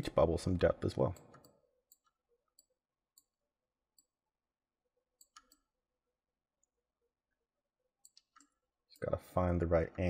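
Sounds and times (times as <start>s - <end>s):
computer mouse clicks: 5.2s - 5.7s, 8.0s - 8.6s.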